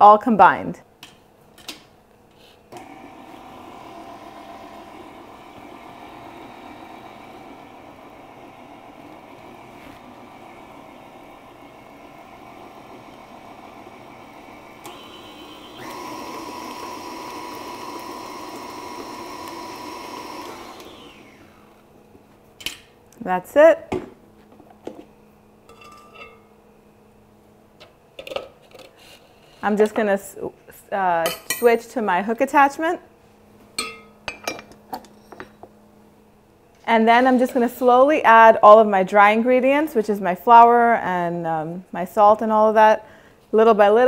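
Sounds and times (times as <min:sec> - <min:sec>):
stand mixer motor running: 0:02.8 - 0:21.8.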